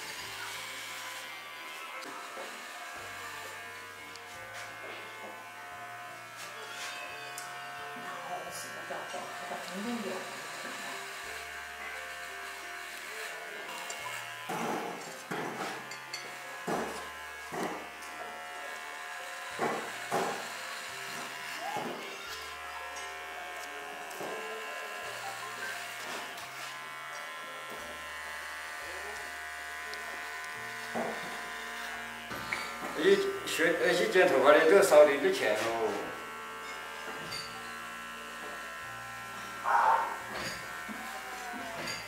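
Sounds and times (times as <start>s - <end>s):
electric hair clippers buzzing: 0.0s - 42.0s.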